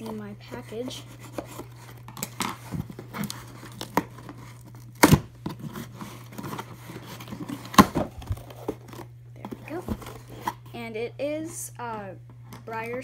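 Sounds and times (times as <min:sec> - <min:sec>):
packaging tearing and crinkling: 0:01.0 - 0:09.1
box snapping open: 0:01.4 - 0:10.6.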